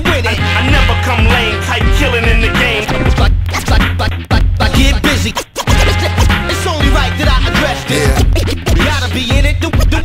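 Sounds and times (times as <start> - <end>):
hip hop beat with heavy bass: 0.0 - 10.0
turntable scratching: 2.8 - 9.3.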